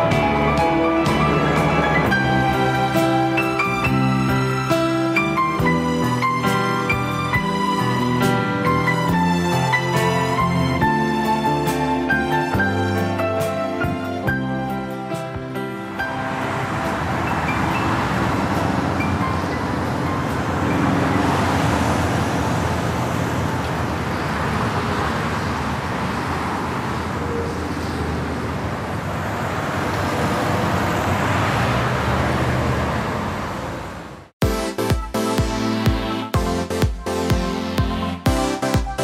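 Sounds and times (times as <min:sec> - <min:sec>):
city street traffic: 0:00.0 - 0:39.0.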